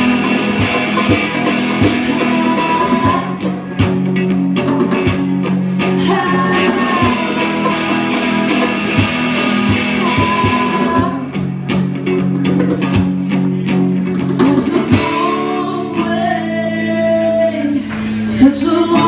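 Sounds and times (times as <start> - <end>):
live rock band playing: 0.0 - 19.0
person singing: 1.7 - 3.8, 5.8 - 11.5, 14.2 - 19.0.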